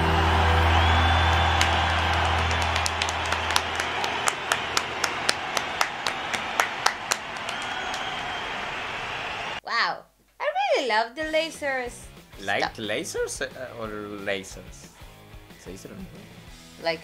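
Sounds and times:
crowd cheering and applause: 0.0s - 9.6s
person clapping close by: 1.3s - 9.6s.

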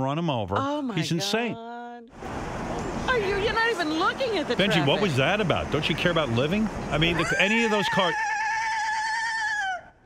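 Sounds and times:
man imitating horse neigh: 7.1s - 9.9s.

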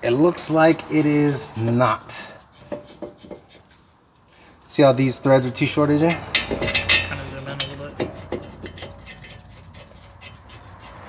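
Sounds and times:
light metal clicks and taps: 6.3s - 9.4s.

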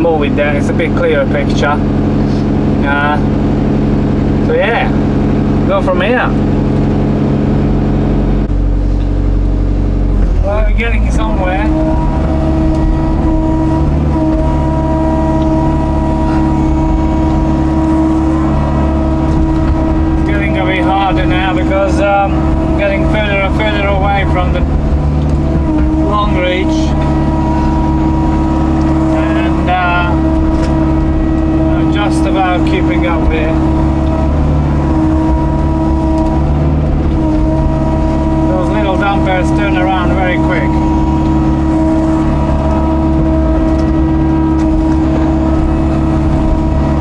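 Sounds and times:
excavator diesel engine: 0.0s - 47.0s
hydraulic whine: 0.0s - 47.0s.

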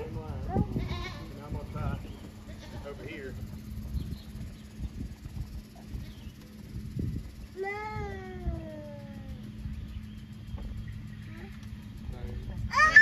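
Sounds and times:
low steady rumble: 0.0s - 13.0s
long descending animal call: 12.7s - 13.0s.

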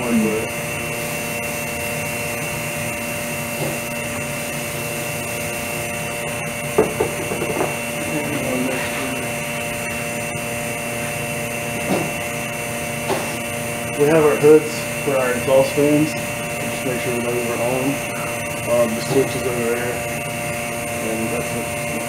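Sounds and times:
vacuum pump humming: 0.0s - 22.0s.

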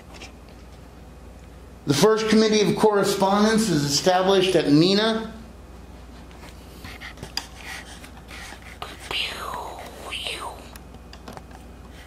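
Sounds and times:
low room hum: 0.0s - 12.0s
person whispering: 8.7s - 10.8s.

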